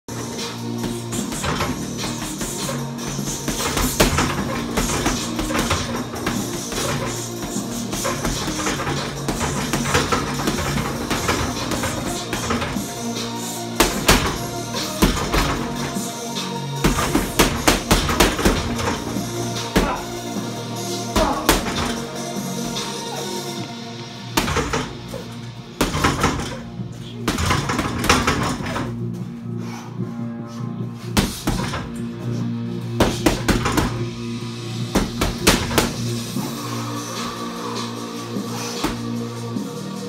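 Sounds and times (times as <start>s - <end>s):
music: 0.0s - 40.0s
gloved punches on heavy bag: 0.8s - 12.9s, 13.8s - 16.0s, 16.8s - 19.1s, 21.2s - 22.0s, 24.4s - 25.0s, 25.8s - 26.6s, 31.2s - 31.9s, 33.0s - 34.0s, 34.9s - 36.0s.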